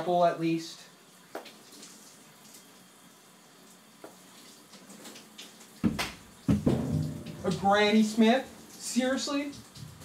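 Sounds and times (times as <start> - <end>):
shower running: 0.0 - 10.0.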